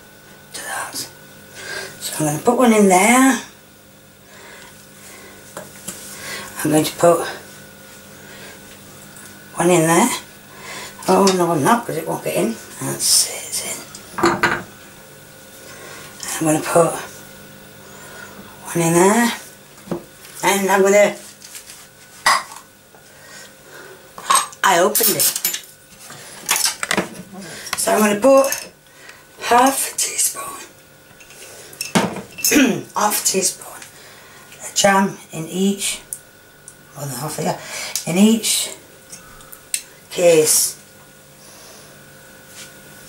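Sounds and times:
faint steady hum: 0.0s - 43.0s
kitchenware clink: 14.2s - 14.7s.

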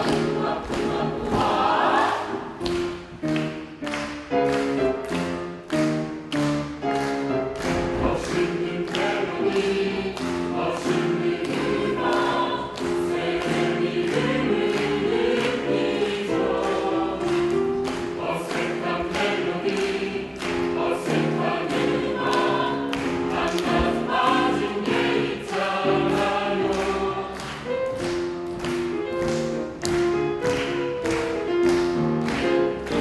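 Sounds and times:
mixed choir singing swing jazz: 0.0s - 2.9s, 7.7s - 29.6s.

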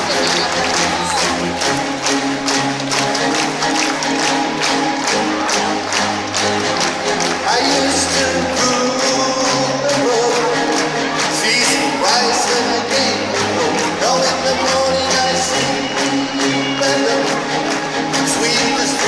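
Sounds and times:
live band music over pa: 0.0s - 19.0s.

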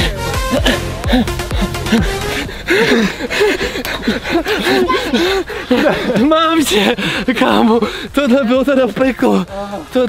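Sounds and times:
man laughing: 0.0s - 7.8s.

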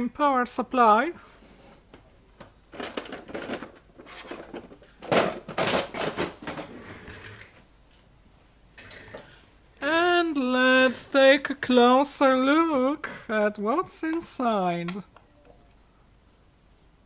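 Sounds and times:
hard objects clattering on workbench: 2.7s - 7.5s.

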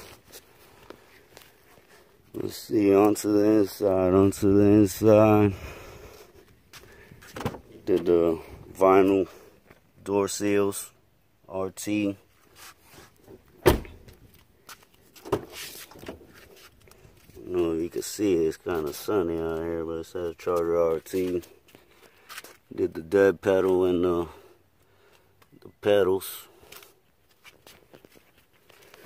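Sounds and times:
footsteps on brick pavers: 6.1s - 9.9s, 13.9s - 17.5s, 26.5s - 29.0s.

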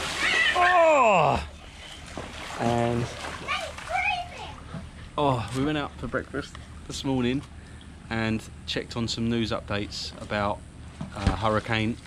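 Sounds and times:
splash into swimming pool: 0.0s - 1.4s, 2.0s - 4.3s
person crying whoa: 0.2s - 1.5s.

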